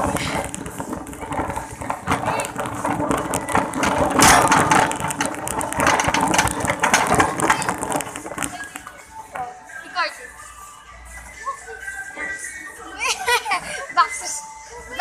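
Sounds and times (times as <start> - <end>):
shopping cart rattling on tiles: 0.0 - 9.6.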